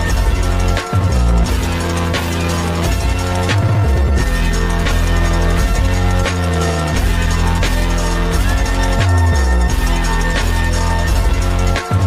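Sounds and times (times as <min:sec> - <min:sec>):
electronic music with heavy bass: 0:00.0 - 0:12.0.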